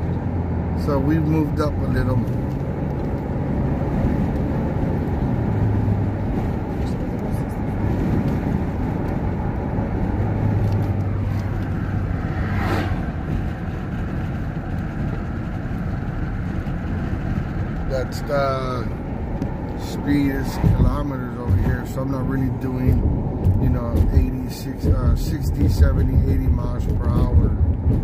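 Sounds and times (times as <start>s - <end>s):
passing vehicle whoosh: 0.0s - 26.7s
car cabin road and engine noise: 0.0s - 28.0s.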